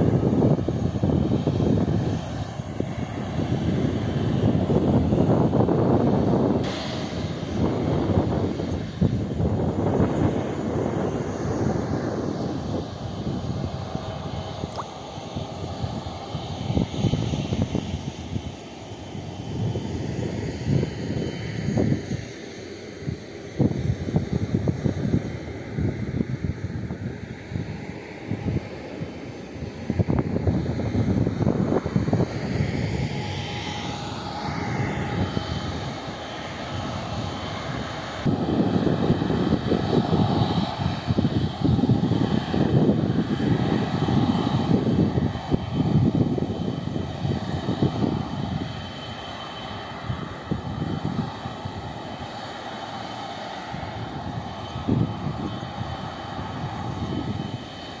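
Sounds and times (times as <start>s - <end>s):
jet airliner landing: 0.0s - 58.0s
wind rumbling on microphone: 0.0s - 58.0s.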